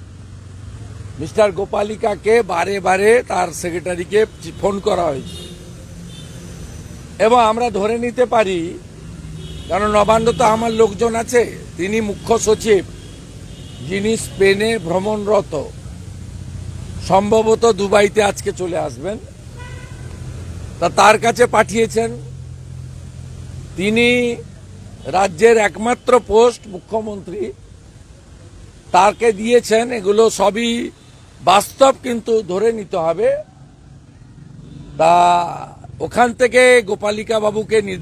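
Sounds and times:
outdoor background noise: 0.0 - 38.0
street traffic noise: 0.0 - 38.0
man speaking into microphones: 1.1 - 5.4, 7.2 - 8.9, 9.7 - 12.9, 13.8 - 15.8, 17.0 - 19.4, 20.8 - 22.4, 23.7 - 27.6, 28.9 - 33.5, 35.0 - 38.0.

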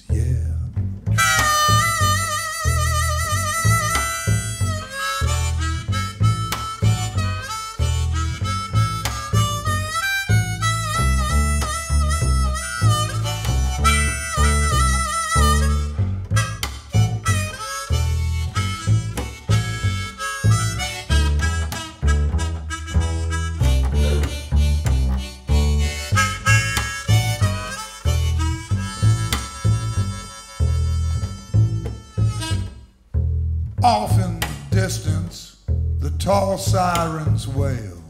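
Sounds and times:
upright double bass: 0.0 - 38.0
harmonica solo: 1.1 - 33.2.

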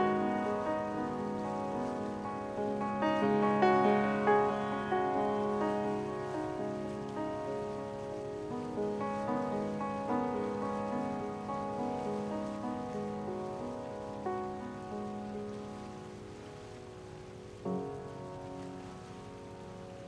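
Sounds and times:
faint steady hiss: 0.0 - 20.0
upright piano played slowly: 0.0 - 20.0.

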